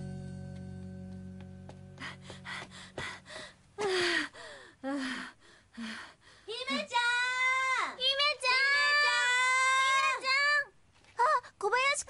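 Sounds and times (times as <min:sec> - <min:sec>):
soft background music: 0:00.0 - 0:03.4.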